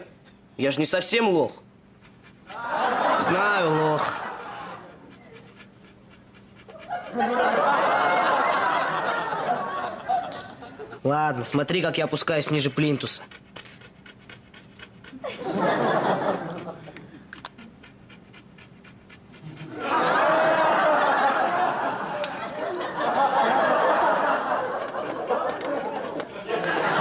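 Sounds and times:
sitcom audience laughter: 2.5 - 5.6, 6.6 - 11.1, 15.2 - 17.2, 19.5 - 27.0.

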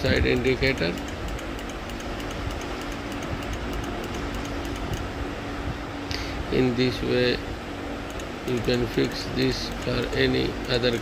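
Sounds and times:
fast even ticking: 0.0 - 5.1, 8.0 - 11.0
steady background hum: 0.0 - 11.0.

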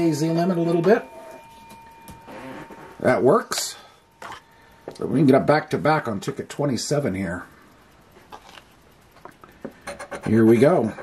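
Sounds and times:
faint steady high tone: 0.0 - 8.2.

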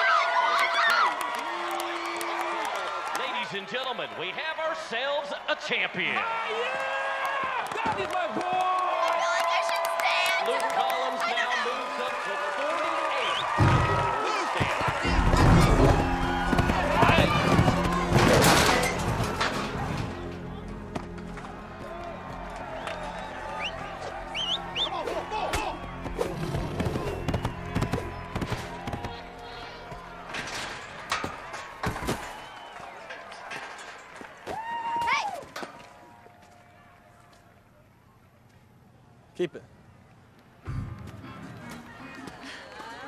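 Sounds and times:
voices shouting: 0.0 - 35.8
film music score: 15.1 - 31.1.

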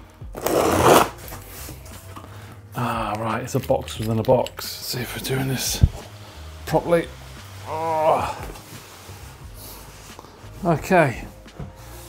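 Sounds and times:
packing tape ripping: 0.4 - 1.4.

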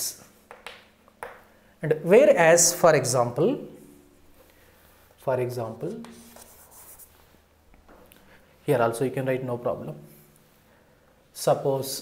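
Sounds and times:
light chalk taps: 0.5 - 1.5
chalk scratching on blackboard: 6.0 - 7.4.

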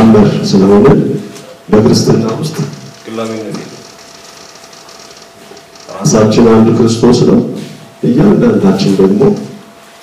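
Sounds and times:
faint hum: 0.0 - 10.0
low hiss: 0.0 - 10.0.

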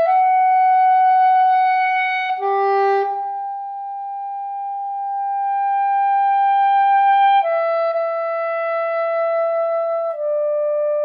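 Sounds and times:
soprano saxophone melody: 0.0 - 11.0.

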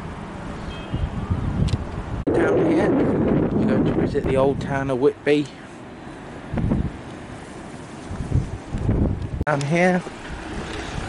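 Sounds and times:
wind buffeting microphone: 0.8 - 5.2, 6.4 - 9.4, 10.1 - 11.0.

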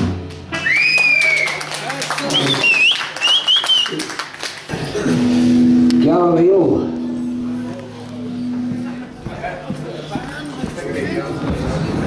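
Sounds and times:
bending voice-like guitar sound: 4.7 - 9.2
amplified guitar note held: 4.9 - 9.2.

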